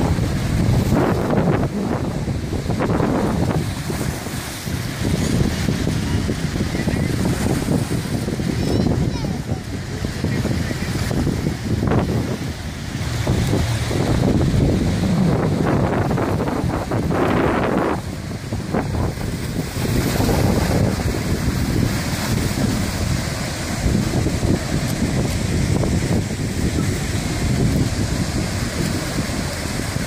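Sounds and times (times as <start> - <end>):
water jet roaring: 0.0 - 30.0
wind buffeting microphone: 0.0 - 30.0.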